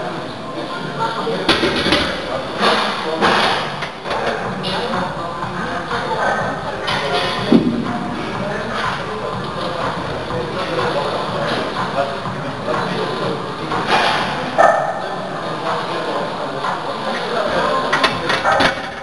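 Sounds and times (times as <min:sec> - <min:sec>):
indistinct voices: 0:00.0 - 0:19.0
steady background din: 0:00.0 - 0:19.0.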